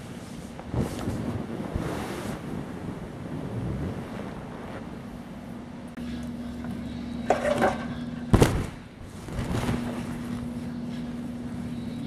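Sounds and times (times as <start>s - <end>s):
wind buffeting microphone: 0.0s - 5.9s.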